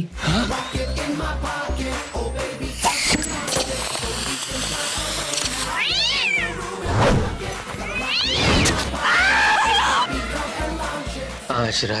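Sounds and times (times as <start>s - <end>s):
background music with steady beat: 0.0s - 12.0s
cat yowling: 5.8s - 6.6s, 7.9s - 10.1s.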